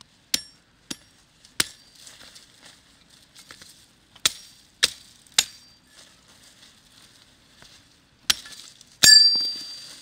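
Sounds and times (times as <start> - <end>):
hatchet chopping branch: 0.3 - 1.9, 3.4 - 5.7, 8.2 - 9.6.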